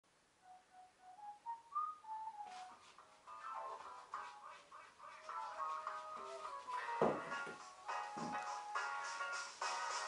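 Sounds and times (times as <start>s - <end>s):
whistled melody: 0.4s - 4.0s, 5.3s - 10.0s.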